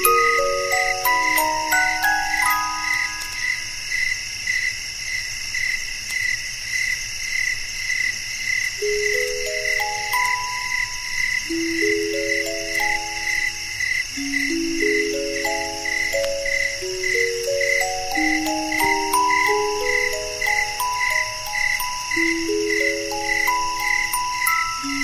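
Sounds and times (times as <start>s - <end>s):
music box melody: 0.0s - 3.8s, 8.8s - 25.0s
crickets chirping: 0.0s - 25.0s.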